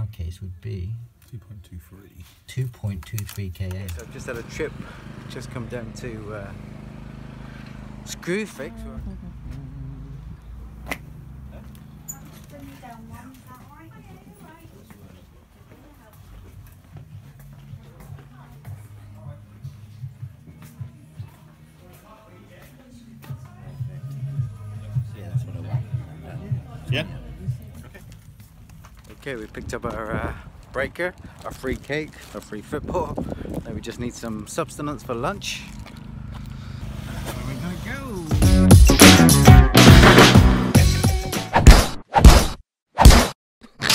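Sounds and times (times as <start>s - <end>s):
indistinct voices: 3.8s - 14.2s
car engine humming: 3.9s - 14.0s, 33.8s - 40.7s
music: 16.9s - 27.8s, 38.1s - 41.6s.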